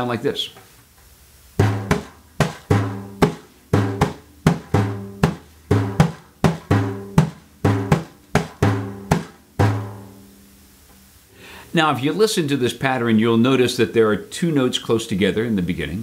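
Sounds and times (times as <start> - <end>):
frame drum rhythm: 1.6 - 10.4.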